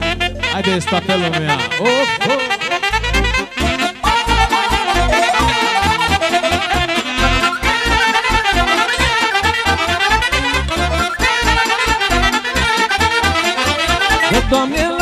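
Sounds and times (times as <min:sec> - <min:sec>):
accordion: 0:00.0 - 0:15.0
clarinet: 0:00.0 - 0:15.0
keyboard bass beat: 0:00.0 - 0:15.0
saxophones: 0:00.0 - 0:15.0.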